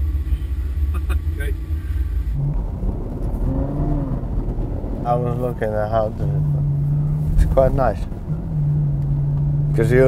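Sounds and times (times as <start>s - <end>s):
car engine rumbling: 0.0s - 10.0s.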